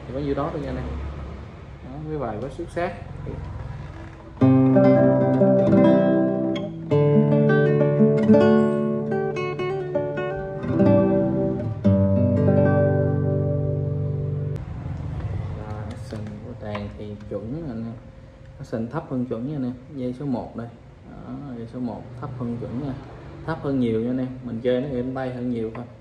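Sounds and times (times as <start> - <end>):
fingerpicked classical guitar: 4.0 - 14.6.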